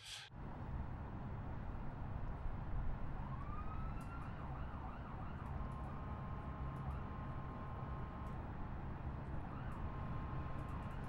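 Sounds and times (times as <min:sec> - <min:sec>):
faint emergency siren: 0:03.0 - 0:08.1, 0:09.2 - 0:11.0.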